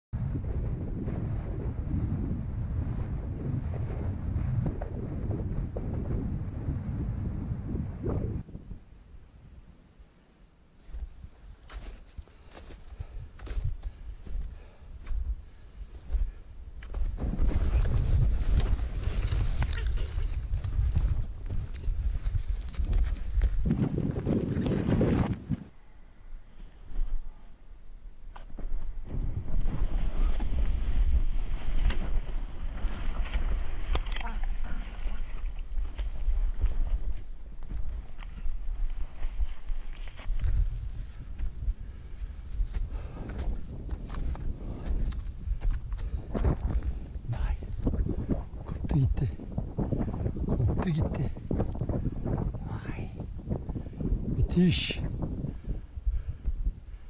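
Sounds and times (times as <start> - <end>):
wind buffeting microphone: 0.1 - 9.7, 10.9 - 25.7, 28.9 - 57.0
crunching and scraping of snow: 17.1 - 25.7, 37.9 - 47.1.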